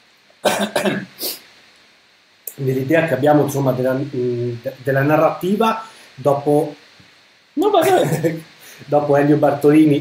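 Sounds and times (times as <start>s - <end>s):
man coughing: 0.4s - 1.4s, 7.8s - 8.4s
sharp breath in: 5.8s - 6.2s, 8.6s - 8.9s.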